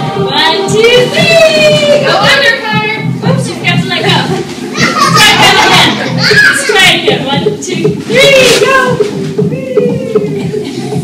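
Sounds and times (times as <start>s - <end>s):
children and adults shouting and chatting: 0.0s - 11.0s.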